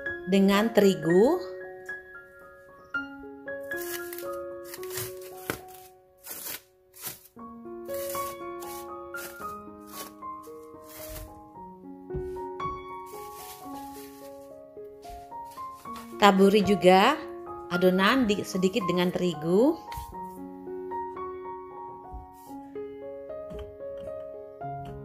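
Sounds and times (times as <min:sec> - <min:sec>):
light background music: 0:00.0 - 0:25.0
plastic cling wrap crinkling: 0:03.6 - 0:11.5, 0:13.0 - 0:16.5.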